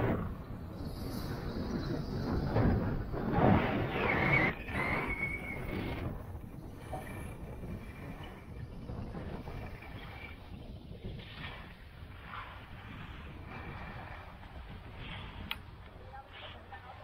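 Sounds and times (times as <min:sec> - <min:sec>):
wind on microphone: 0:00.0 - 0:17.0
skis scraping over snow: 0:00.8 - 0:15.5.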